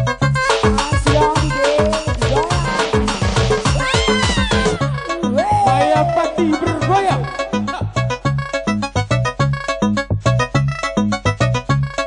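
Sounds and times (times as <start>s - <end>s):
house dance music: 0.4s - 7.6s
kick drum: 0.6s - 4.8s.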